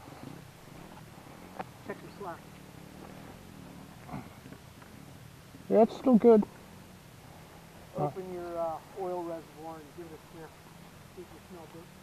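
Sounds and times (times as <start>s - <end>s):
faint low steady hum: 0.0s - 12.0s.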